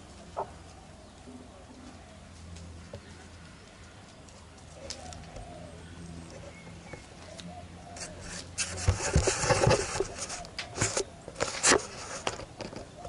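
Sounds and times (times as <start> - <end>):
camera handling knocks and scrapes: 8.6 - 13.0.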